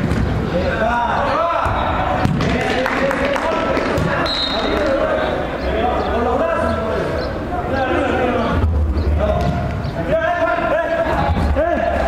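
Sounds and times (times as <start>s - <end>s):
players calling and shouting: 0.0s - 12.0s
ball being kicked: 1.6s - 2.6s.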